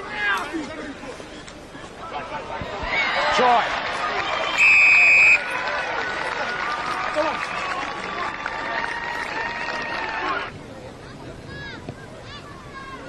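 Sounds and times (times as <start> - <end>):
spectators shouting and cheering: 1.9 - 13.0
referee's whistle blast: 4.5 - 5.5.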